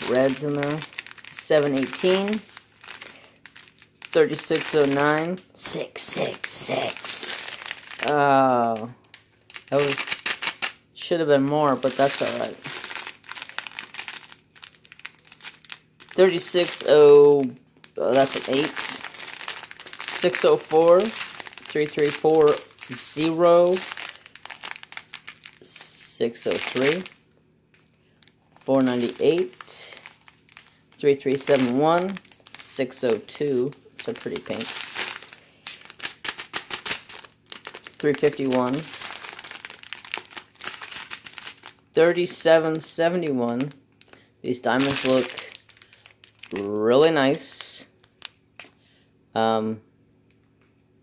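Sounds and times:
plastic bags crinkling: 0:00.0 - 0:48.7.

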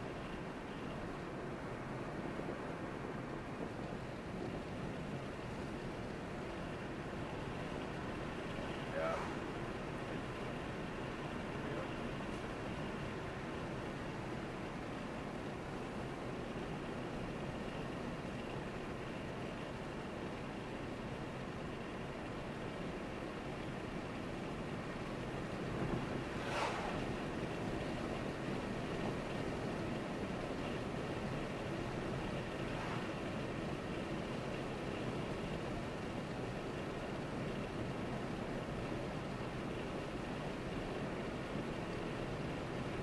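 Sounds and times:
tyre and road noise: 0:00.0 - 0:20.4, 0:21.0 - 0:43.0
car engine hum: 0:00.0 - 0:41.8
brief sharp noise: 0:26.4 - 0:27.0.

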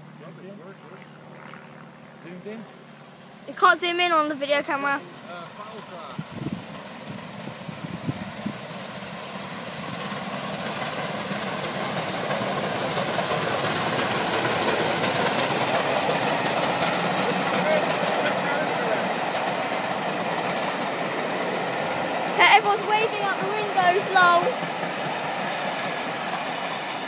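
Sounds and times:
steam train passing on rails: 0:03.0 - 0:27.0.

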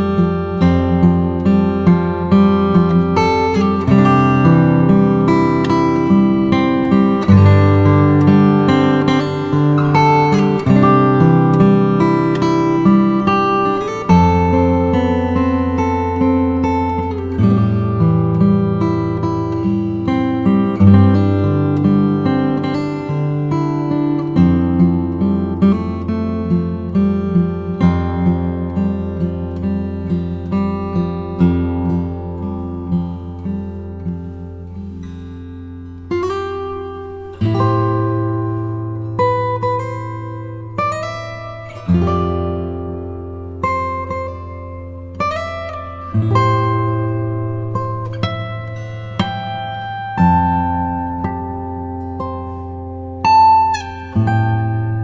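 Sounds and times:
acoustic guitar music: 0:00.0 - 0:55.0.

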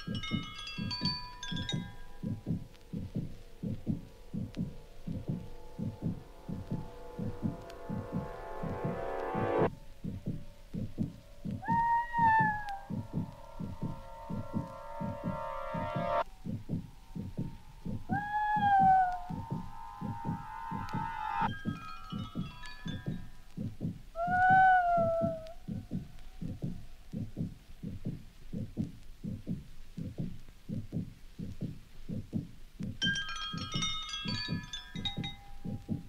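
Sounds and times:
held electronic tones: 0:00.0 - 0:26.1
low electronic throbbing pulse: 0:00.0 - 0:32.6
sliding electronic tone: 0:03.4 - 0:09.7, 0:18.9 - 0:21.8.

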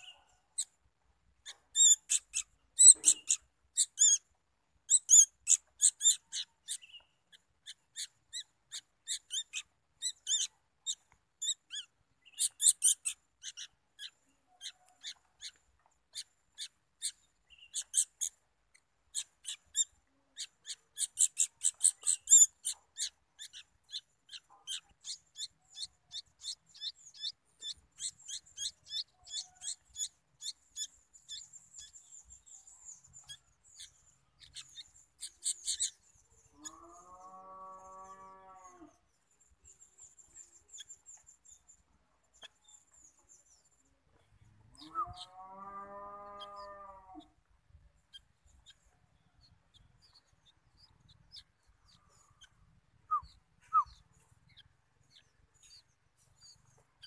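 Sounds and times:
fledglings begging chirps: 0:01.4 - 0:43.9, 0:44.7 - 0:47.4, 0:48.1 - 0:57.0.

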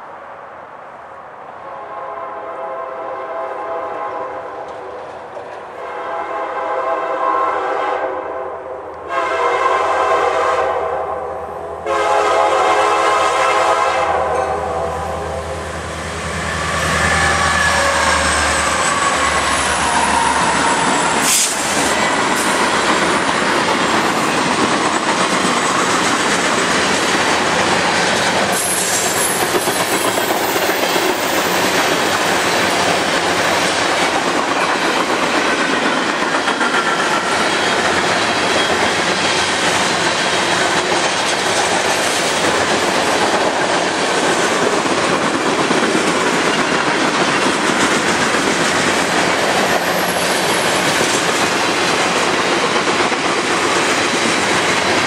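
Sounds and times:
steel wheels rolling on rail: 0:11.8 - 0:55.0.

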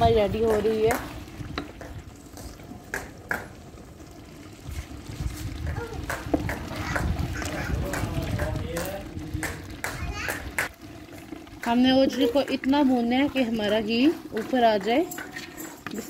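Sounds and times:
tripe frying in fat: 0:00.0 - 0:16.0
ladle stirring and scraping pot: 0:03.5 - 0:09.8, 0:10.7 - 0:16.0.

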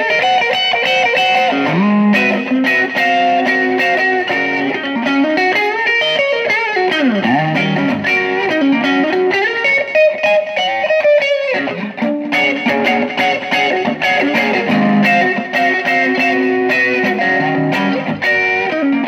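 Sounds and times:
electric guitar playing: 0:00.0 - 0:19.0.

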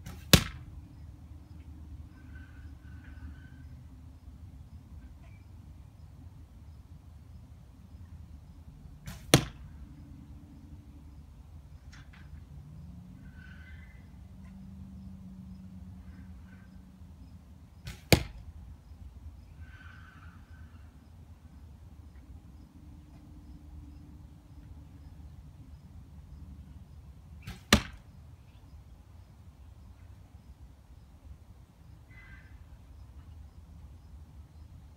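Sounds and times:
arrow striking cardboard target: 0:00.0 - 0:00.7, 0:09.1 - 0:09.6, 0:17.8 - 0:18.4, 0:27.4 - 0:28.0
arrow rushing through air: 0:09.1 - 0:09.6, 0:17.8 - 0:18.4, 0:27.4 - 0:28.0.

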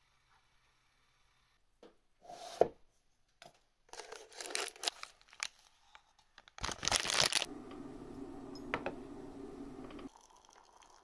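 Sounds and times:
packaging crinkling and tearing: 0:04.0 - 0:07.5.

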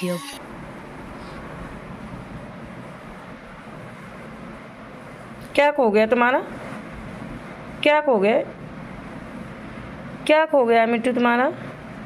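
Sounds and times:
steady background rumble and hiss: 0:00.0 - 0:12.0.

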